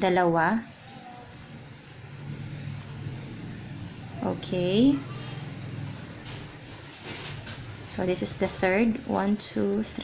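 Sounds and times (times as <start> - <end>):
low motor hum: 0.7 - 10.0.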